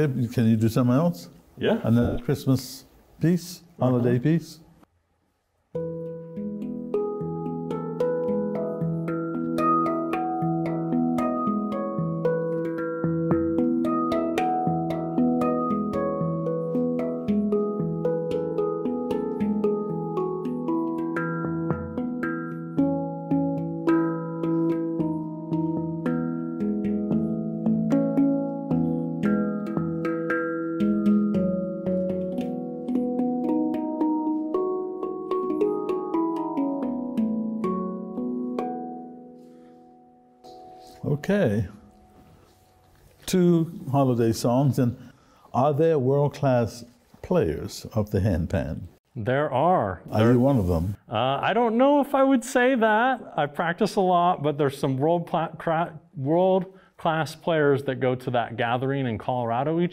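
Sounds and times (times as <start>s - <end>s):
handpan melody: 5.8s - 43.2s.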